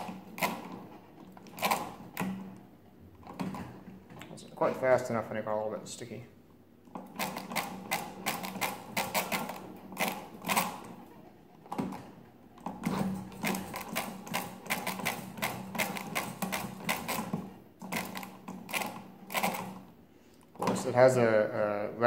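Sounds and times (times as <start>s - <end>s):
calculator hand crank clicking: 0.0s - 2.4s, 6.9s - 10.9s, 12.6s - 19.8s.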